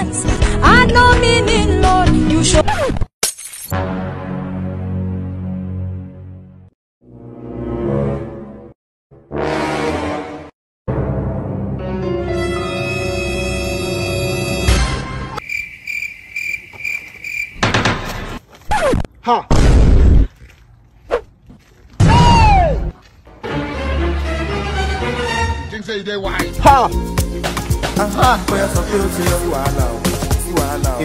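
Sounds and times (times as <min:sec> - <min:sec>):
glass shattering effect: 0:03.2 - 0:03.8
tense music: 0:03.8 - 0:15.4
cricket chirping: 0:15.4 - 0:17.7
song with singing voice: 0:26.4 - 0:31.0.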